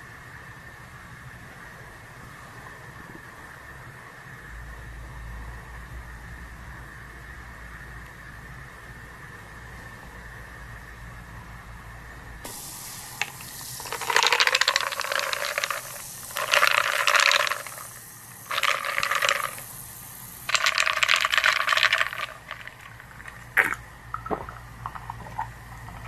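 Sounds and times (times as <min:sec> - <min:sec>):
liquid splashing and fizzing: 0:12.5 - 0:26.0.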